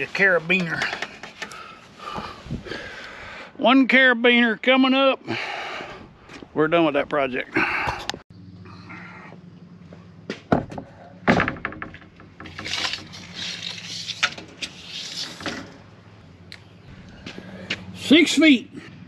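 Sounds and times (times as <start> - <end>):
scraping and rustling: 11.7 - 16.0.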